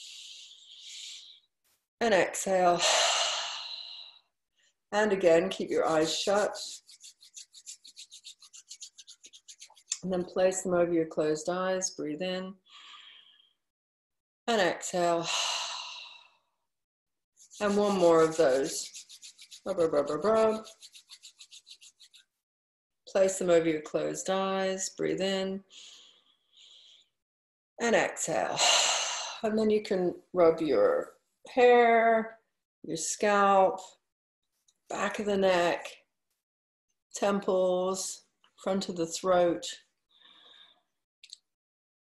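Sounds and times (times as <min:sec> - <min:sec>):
palms rubbing together: 0:05.3 - 0:10.0, 0:17.4 - 0:22.3.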